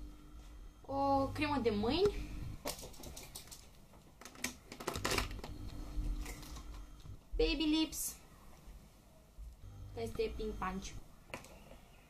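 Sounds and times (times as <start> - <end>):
objects clicking in a handbag: 2.7 - 5.3.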